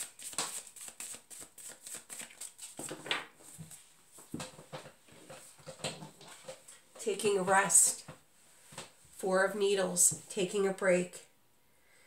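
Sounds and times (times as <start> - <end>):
cards tapping and rustling: 0.0 - 6.7.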